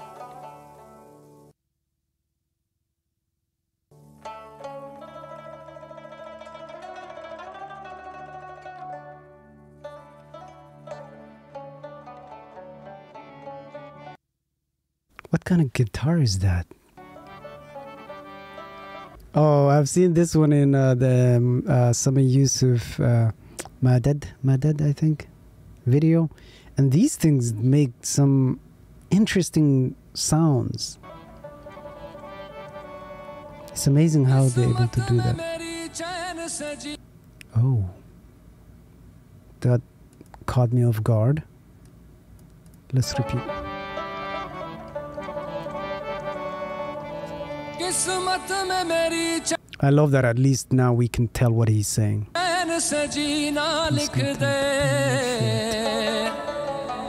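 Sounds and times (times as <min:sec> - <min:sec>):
plucked lute melody: 0:00.0 - 0:01.1, 0:04.2 - 0:14.2
harmonium sustained chord: 0:09.0 - 0:14.2, 0:17.0 - 0:19.2, 0:31.0 - 0:36.4, 0:43.0 - 0:49.6.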